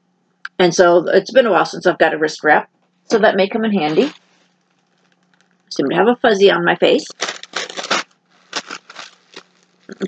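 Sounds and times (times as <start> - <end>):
plastic bag crinkling: 3.8 - 5.7, 7.0 - 10.0.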